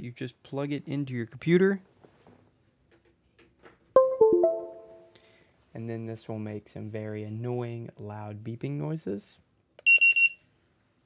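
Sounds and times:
usb device connected chime: 0:04.0 - 0:05.1.

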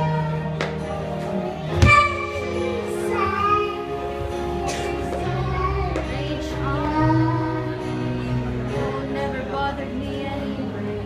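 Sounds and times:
girl singing into a microphone: 0:00.0 - 0:08.0
musical accompaniment: 0:00.0 - 0:11.0.

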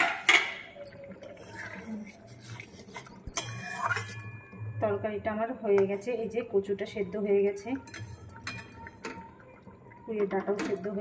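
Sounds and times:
metal spatula scraping wok: 0:01.4 - 0:04.4.

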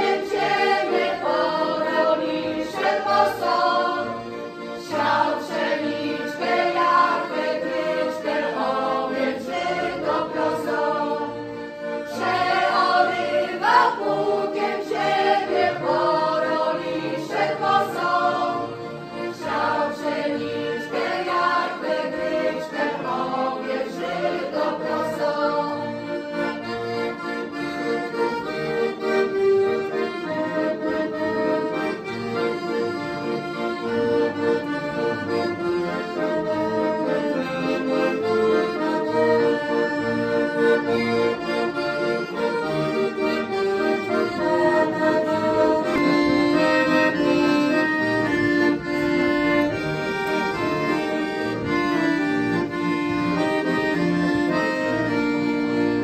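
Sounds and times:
women's choir singing: 0:00.0 - 0:26.2, 0:30.5 - 0:32.1, 0:43.1 - 0:47.8
accordion playing chords: 0:00.0 - 0:56.0.

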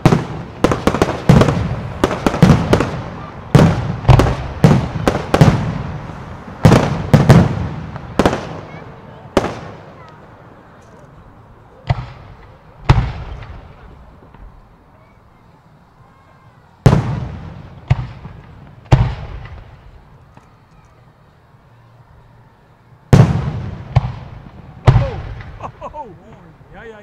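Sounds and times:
fireworks bangs with rolling echo: 0:00.0 - 0:10.4, 0:11.7 - 0:21.0, 0:23.0 - 0:27.0.

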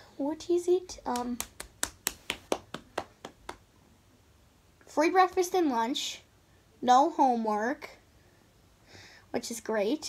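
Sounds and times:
sharp hand taps: 0:01.1 - 0:03.6.

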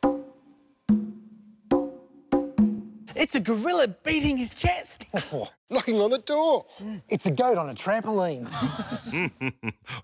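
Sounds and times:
conga drum hits: 0:00.0 - 0:03.0.

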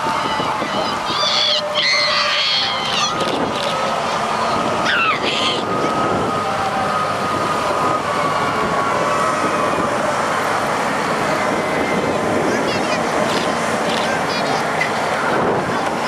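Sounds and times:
truck engines running: 0:00.0 - 0:16.0.

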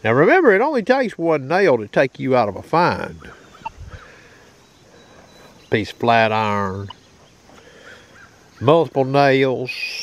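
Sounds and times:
metal detector warbling tones: 0:03.5 - 0:04.0.

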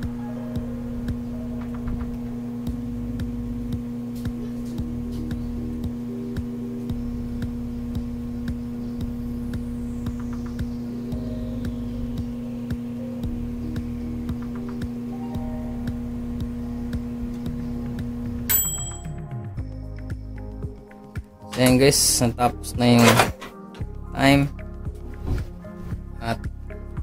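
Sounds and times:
microwave transformer hum: 0:00.0 - 0:27.0
timer bell ding: 0:18.5 - 0:19.4.

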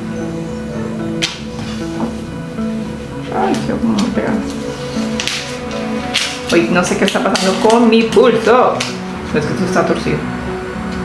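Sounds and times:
background music: 0:00.0 - 0:11.0
hands tapping paper: 0:03.5 - 0:09.0.

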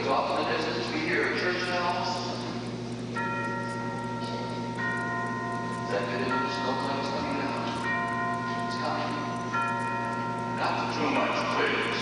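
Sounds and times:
tubular chimes ringing: 0:00.0 - 0:12.0.

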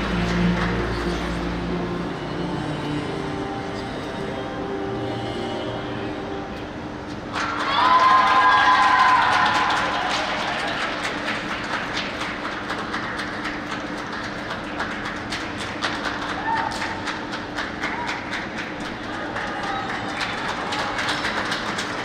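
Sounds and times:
crowd hand clapping: 0:00.0 - 0:01.6, 0:07.3 - 0:22.0
low hum: 0:00.0 - 0:09.2.

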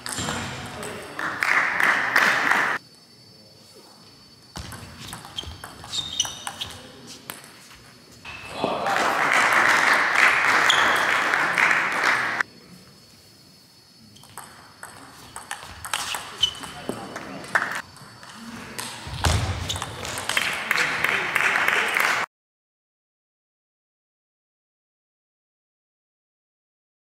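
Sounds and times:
people shouting: 0:08.3 - 0:09.8.

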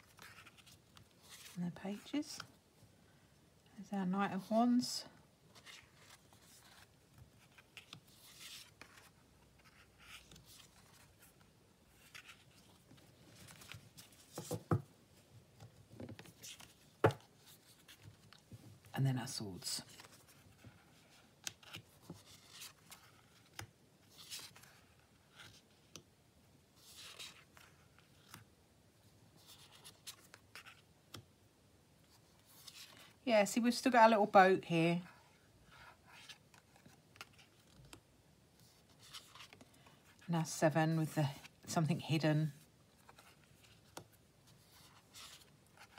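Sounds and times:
cards sliding and rustling on cloth: 0:00.0 - 0:02.6, 0:05.5 - 0:18.8, 0:19.8 - 0:26.0, 0:26.8 - 0:28.5, 0:32.0 - 0:33.2, 0:35.3 - 0:40.2, 0:42.8 - 0:45.9.

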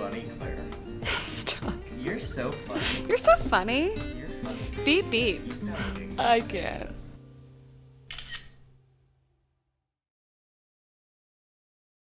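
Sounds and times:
background music: 0:00.0 - 0:08.8
camera shutter click: 0:08.1 - 0:08.7.

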